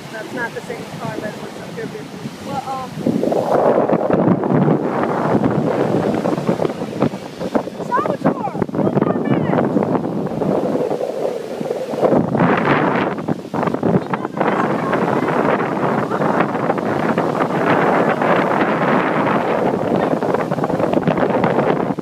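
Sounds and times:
ocean surf breaking: 0.0s - 22.0s
wind buffeting microphone: 0.0s - 22.0s.

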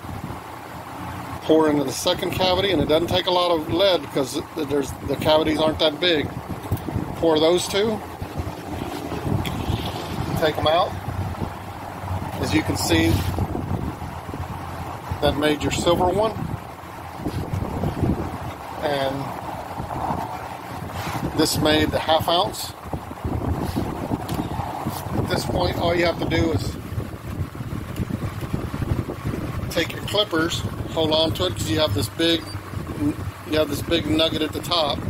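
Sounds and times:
windy hiss: 0.0s - 35.0s
low rumble: 6.3s - 21.0s.

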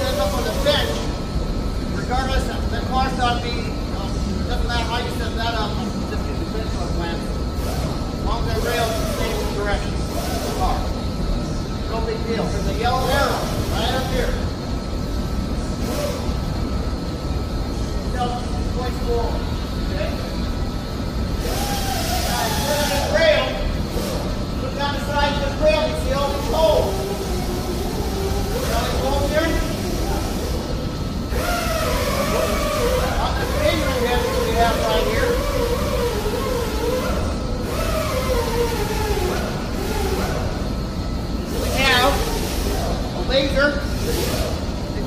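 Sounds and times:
people talking indistinctly: 22.2s - 37.1s.

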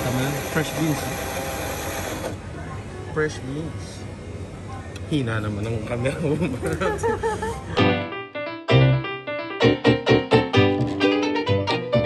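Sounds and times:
coffee machine grinding beans: 0.0s - 2.4s.

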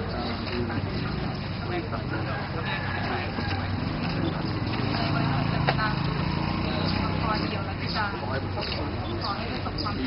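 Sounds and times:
indistinct voices: 0.0s - 10.0s.

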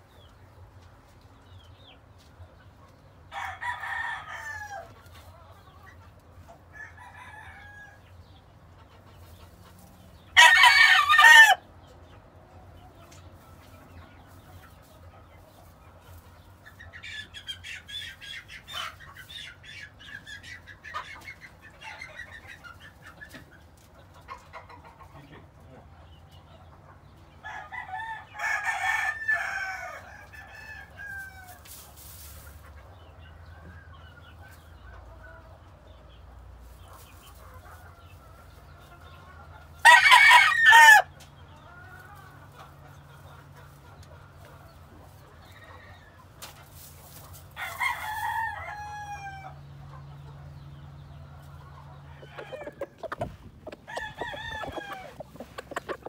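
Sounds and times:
pecking and scratching in straw: 0.0s - 7.6s, 8.4s - 11.4s, 12.1s - 25.1s, 28.9s - 50.3s, 51.4s - 56.0s
rooster crowing: 3.3s - 4.9s, 10.4s - 11.6s, 39.8s - 41.1s, 47.6s - 49.6s, 53.9s - 56.0s
soft clucks: 16.6s - 27.2s, 51.4s - 56.0s.

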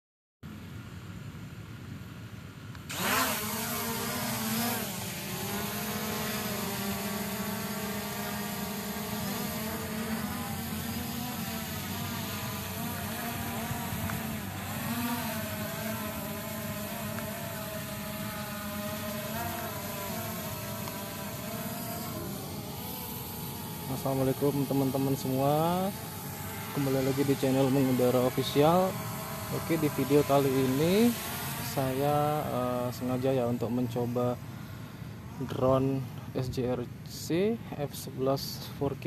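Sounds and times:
drone propellers whirring: 2.8s - 35.4s.

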